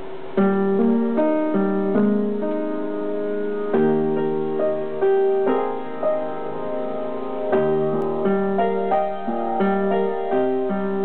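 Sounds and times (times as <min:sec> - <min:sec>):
faint steady hum: 0:00.0 - 0:11.0
upright piano playing: 0:00.0 - 0:11.0.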